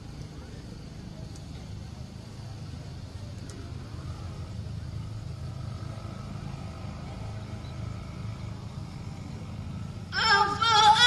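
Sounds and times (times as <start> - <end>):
low background hum and rumble: 0.0 - 11.0.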